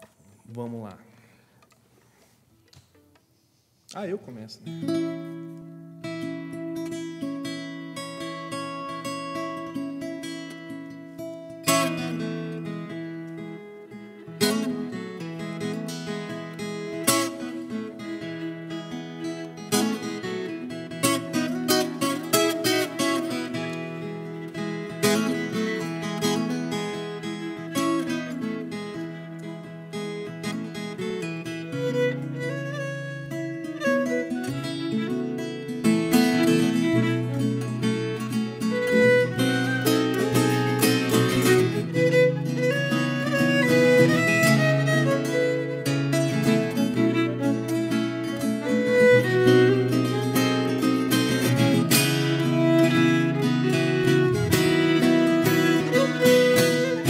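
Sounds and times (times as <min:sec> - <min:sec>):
plucked guitar notes and chords: 0:04.7 - 0:57.0.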